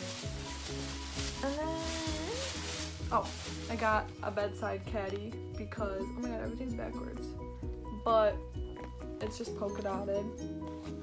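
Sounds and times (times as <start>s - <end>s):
plastic bag rustling: 0.0s - 4.7s
background music: 0.0s - 11.0s.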